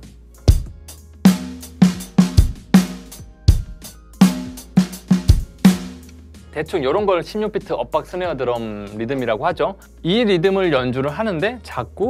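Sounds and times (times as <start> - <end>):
hi-hat keeping time: 0.4 - 6.3
bass drum strokes: 0.5 - 6.3
snare drum hits: 4.2 - 6.1.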